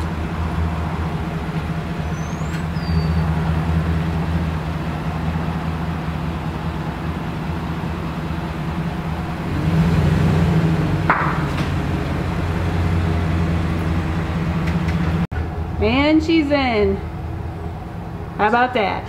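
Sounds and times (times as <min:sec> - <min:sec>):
pickup truck engine running: 0:00.0 - 0:16.2
short bird chirp: 0:02.1 - 0:03.2.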